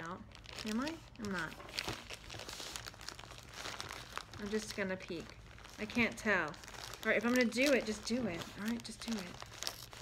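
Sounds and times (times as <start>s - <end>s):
package wrapping crinkling: 0.0s - 10.0s.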